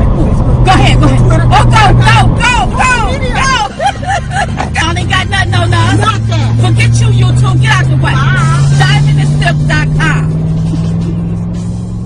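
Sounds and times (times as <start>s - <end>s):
low bass note rising: 0.0s - 12.0s
music: 7.8s - 12.0s.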